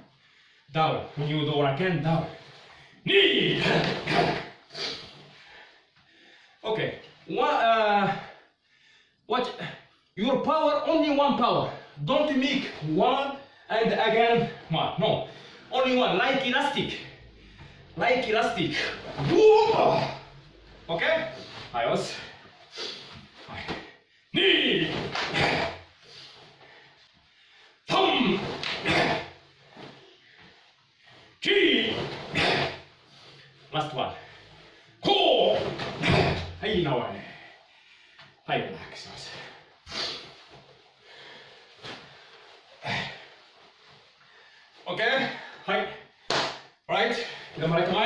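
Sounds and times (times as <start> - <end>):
man shouting: 3.1 - 4.0, 18.3 - 20.3, 24.4 - 25.8, 27.9 - 29.2, 31.4 - 32.6, 35.0 - 36.9.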